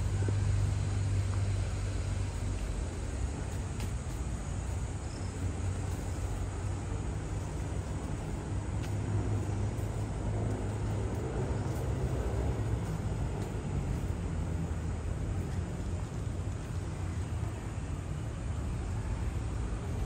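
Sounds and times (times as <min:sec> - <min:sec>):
faint engine hum: 0:00.0 - 0:20.0
low rumble of city traffic: 0:00.0 - 0:20.0.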